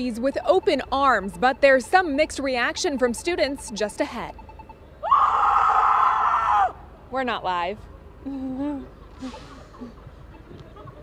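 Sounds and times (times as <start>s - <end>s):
boy screaming: 5.0s - 6.8s.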